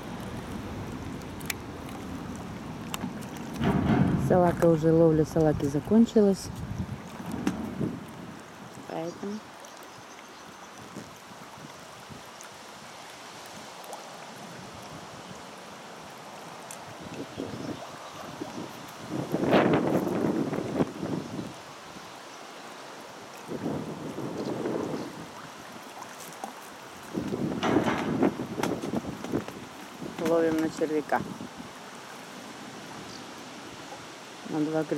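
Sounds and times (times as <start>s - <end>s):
wind buffeting microphone: 0.0s - 9.4s, 16.8s - 21.6s, 23.4s - 25.7s, 27.0s - 31.8s
choppy water: 0.0s - 34.9s.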